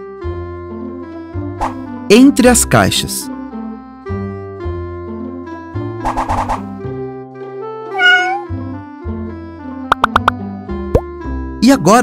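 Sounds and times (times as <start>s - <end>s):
light background music: 0.0s - 12.0s
cat meowing: 7.9s - 8.5s.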